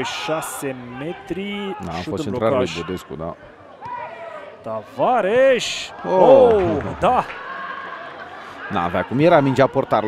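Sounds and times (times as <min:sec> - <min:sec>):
male commentator speaking: 0:00.0 - 0:03.4.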